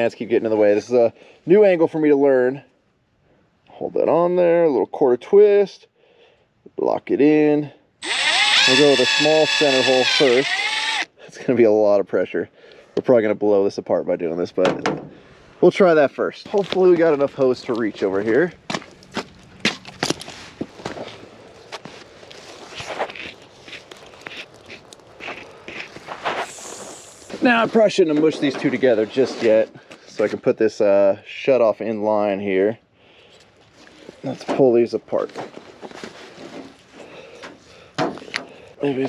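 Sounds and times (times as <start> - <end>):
footsteps on stone and dirt: 16.4 - 26.5.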